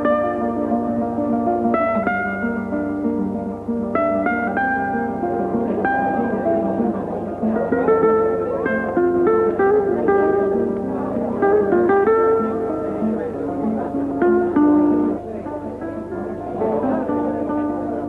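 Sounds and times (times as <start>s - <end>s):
plucked guitar melody: 0.0s - 18.0s.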